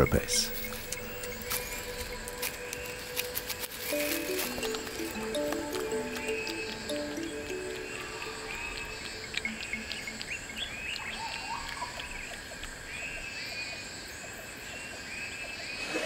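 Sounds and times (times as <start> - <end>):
soft low music notes: 0.0 - 11.8
bird call rising and falling: 0.0 - 12.3
high insect drone: 0.0 - 14.6.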